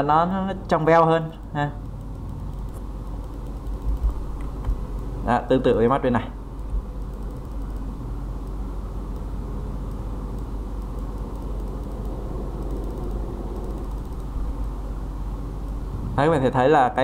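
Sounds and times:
low background rumble and hum: 0.0 - 17.0.

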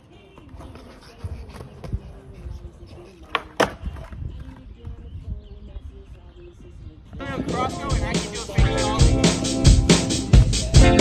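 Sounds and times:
skateboard wheels rolling on concrete: 0.0 - 5.4.

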